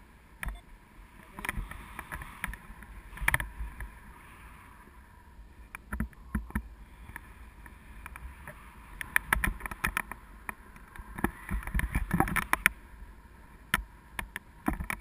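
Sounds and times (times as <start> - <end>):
wind rushing over microphone: 1.1 - 15.0.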